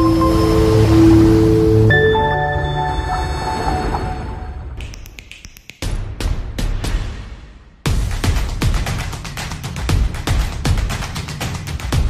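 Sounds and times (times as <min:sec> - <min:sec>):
chord strike: 0:00.0 - 0:04.8
held synth tones: 0:00.0 - 0:04.8.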